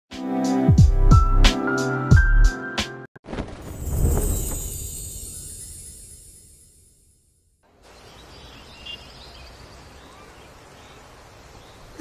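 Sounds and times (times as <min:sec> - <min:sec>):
small birds chirping: 0:07.7 - 0:12.0.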